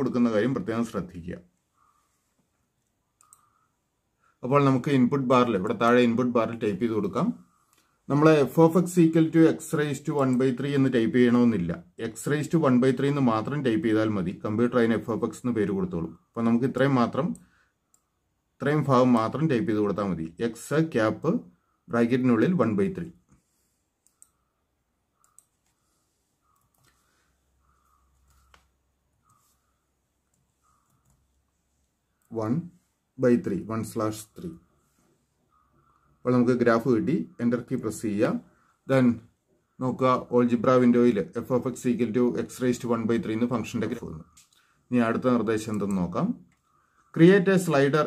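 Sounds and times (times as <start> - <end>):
faint click: 2.8 - 3.5, 24.0 - 24.4, 25.2 - 25.8
faint computer clicks: 2.8 - 3.6, 24.0 - 24.4, 25.1 - 25.8, 26.4 - 29.5, 30.2 - 32.4, 45.6 - 46.7.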